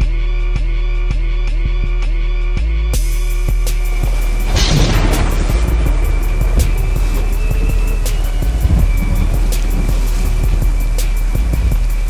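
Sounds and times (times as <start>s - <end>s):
outro music with deep bass: 0.0s - 12.0s.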